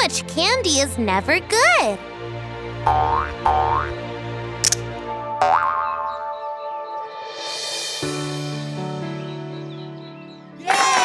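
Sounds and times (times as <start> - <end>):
cartoon background music: 0.0 - 11.0
rising boing sound effects: 2.9 - 4.0, 5.4 - 6.3.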